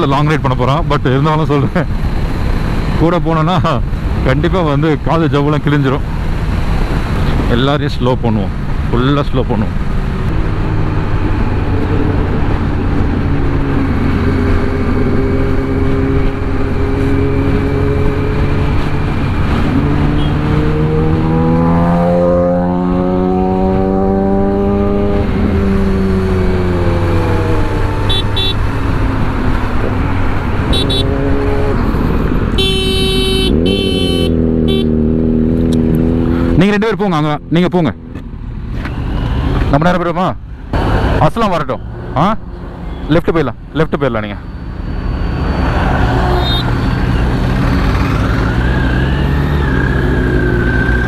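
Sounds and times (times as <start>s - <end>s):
motorcycle engine revving: 9.8s - 36.7s, 46.1s - 51.0s
short horn toots: 32.6s - 34.9s.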